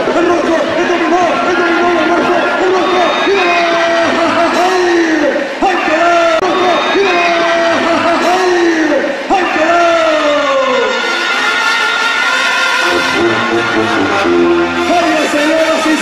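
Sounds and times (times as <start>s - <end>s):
crowd noise: 0.0s - 16.0s.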